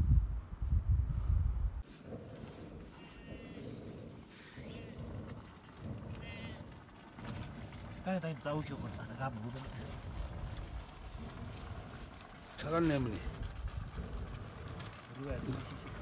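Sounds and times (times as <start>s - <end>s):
wind rumble on microphone: 0.0s - 16.0s
sheep bleating faintly: 3.0s - 3.8s, 6.1s - 6.8s.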